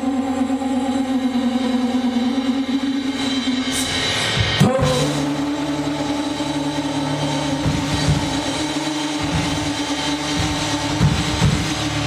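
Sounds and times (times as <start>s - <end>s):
live band sustained drone note: 0.0s - 12.0s.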